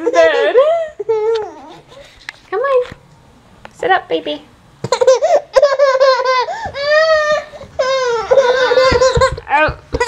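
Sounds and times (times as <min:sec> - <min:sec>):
toddler laughing: 0:00.0 - 0:02.0, 0:04.8 - 0:10.0.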